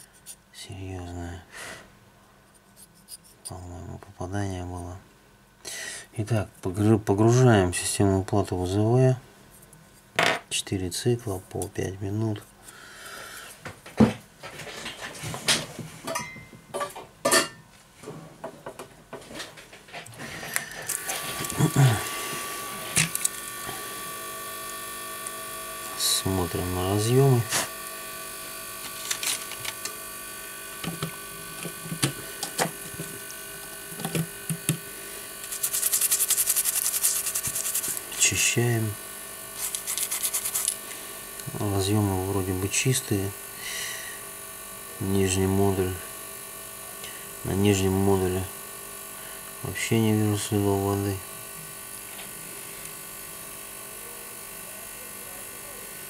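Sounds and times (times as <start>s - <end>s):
ultrasonic cleaner humming: 10.2s - 56.0s.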